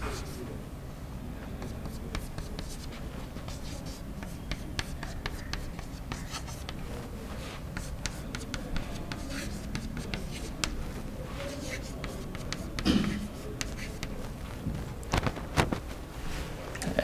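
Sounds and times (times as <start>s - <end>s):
chalk tapping and scraping on blackboard: 0.0s - 0.5s, 1.5s - 15.4s.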